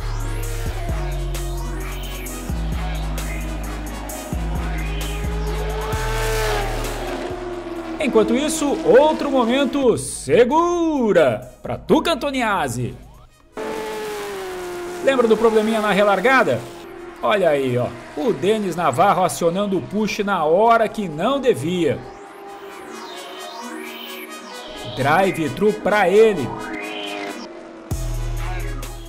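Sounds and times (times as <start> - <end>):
race car engine at high revs: 0.0 - 10.0, 13.5 - 29.0
background music with rising sweep: 0.0 - 10.6, 13.0 - 29.0
deep bass note: 2.5 - 8.8.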